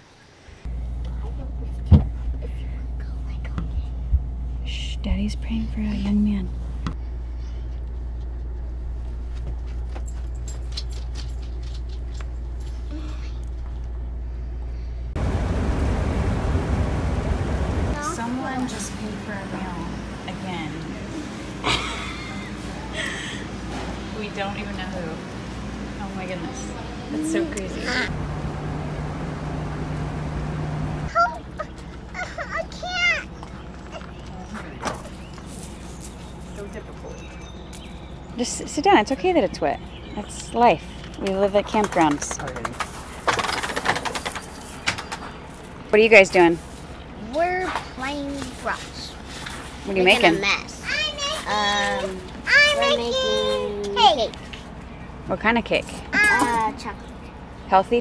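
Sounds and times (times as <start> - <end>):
low hum: 0.6 - 22.3, 25.1 - 31.1
road noise inside driving vehicle: 15.1 - 21.6, 24.2 - 31.4.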